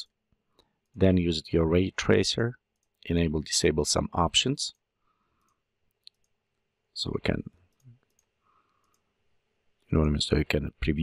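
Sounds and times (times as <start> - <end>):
computer mouse click: 5.4 - 6.4, 7.7 - 9.1.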